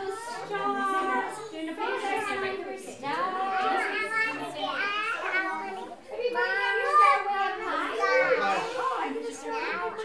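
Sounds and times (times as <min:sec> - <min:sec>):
adult voices: 0:00.0 - 0:10.0
children chattering and calling: 0:00.0 - 0:10.0.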